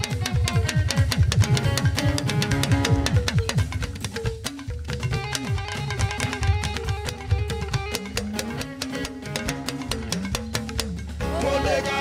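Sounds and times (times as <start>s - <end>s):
live band playing: 0.0s - 12.0s
talking drum: 0.0s - 12.0s
person's voice: 11.2s - 12.0s.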